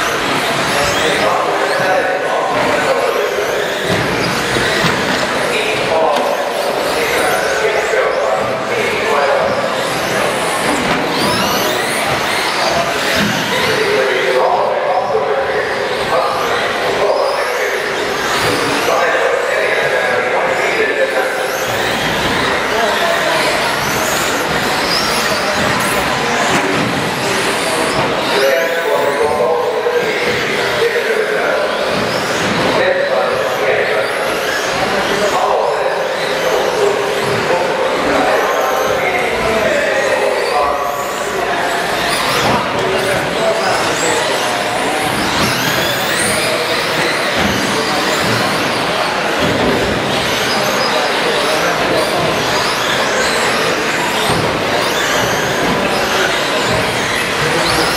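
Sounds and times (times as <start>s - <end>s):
electric motors whining: 0.0s - 57.9s.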